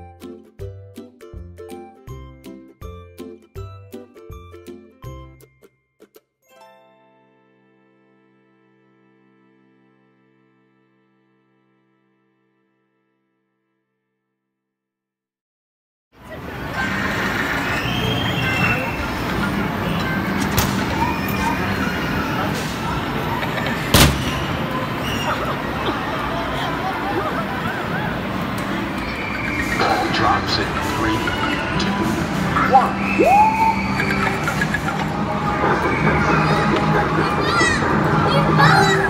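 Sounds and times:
children shouting: 0:16.2 - 0:39.0
crowd chatter: 0:16.2 - 0:39.0
amusement arcade din: 0:16.6 - 0:39.0.

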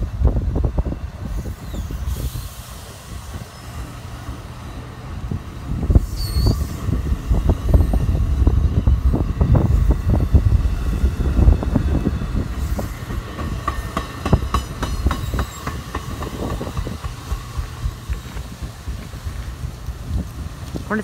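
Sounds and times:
heavy low train rumble: 0:00.0 - 0:21.0
train wheels clicking over rail joints: 0:01.3 - 0:21.0.

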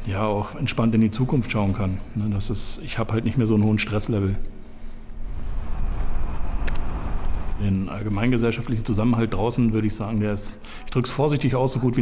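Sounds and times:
deep low rumble: 0:04.9 - 0:09.3.

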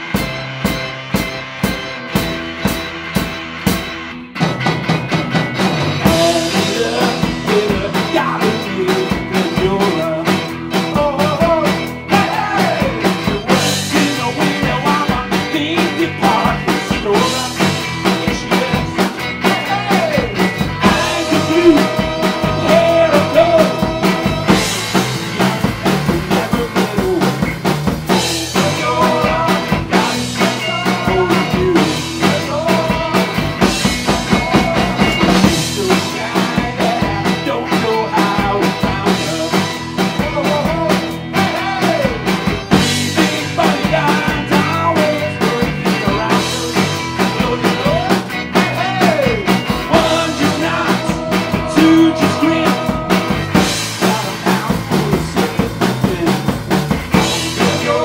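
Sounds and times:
drum kit steady beat: 0:00.0 - 0:58.0
electric guitars: 0:00.0 - 0:58.0
person singing: 0:06.0 - 0:27.4, 0:28.1 - 0:58.0.

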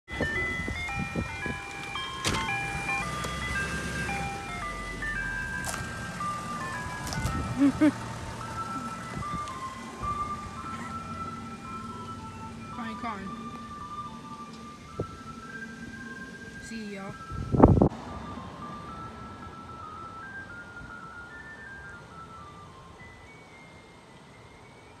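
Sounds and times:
truck engine running: 0:00.1 - 0:23.3
ice cream truck chime melody: 0:00.1 - 0:25.0.

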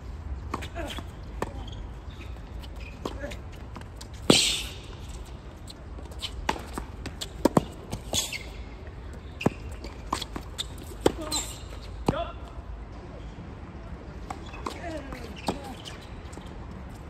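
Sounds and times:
tennis ball bouncing on court: 0:06.4 - 0:08.4.

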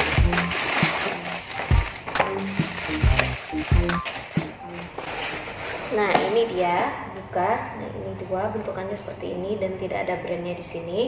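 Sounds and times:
background music with bass beat: 0:00.0 - 0:04.9
plastic bag tearing and rustling: 0:00.0 - 0:06.1.

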